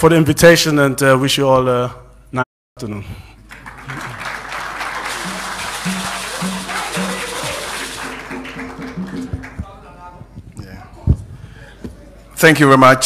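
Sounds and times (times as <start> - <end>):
audience applauding: 3.4 - 9.9.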